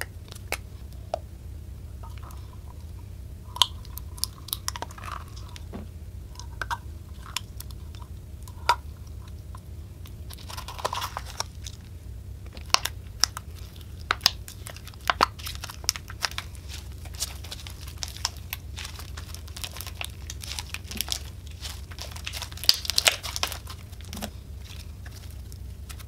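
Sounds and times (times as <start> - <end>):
sticky pops and crackles: 3.6 - 26.0.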